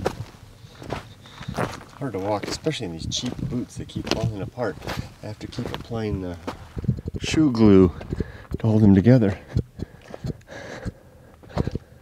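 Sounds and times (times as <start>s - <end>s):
boot footsteps on gritty ground: 0.0s - 11.9s.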